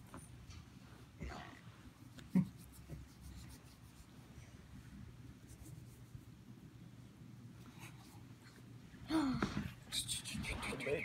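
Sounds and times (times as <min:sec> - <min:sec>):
hands rubbing dog fur: 0:02.0 - 0:04.4, 0:05.3 - 0:06.4.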